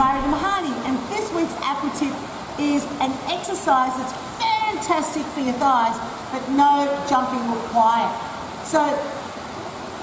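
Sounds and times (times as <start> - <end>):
steady rushing noise: 0.0 - 3.1
woman talking: 0.0 - 9.2.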